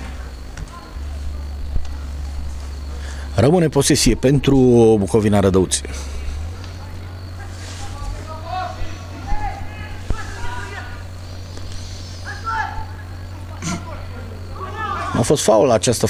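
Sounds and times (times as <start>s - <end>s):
distant voices shouting: 0.0s - 16.0s
steady low hum: 0.0s - 16.0s.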